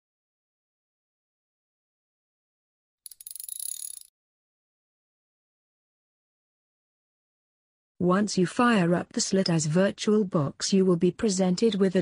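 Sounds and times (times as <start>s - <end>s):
jingling bell-like sound effect: 3.1s - 4.1s.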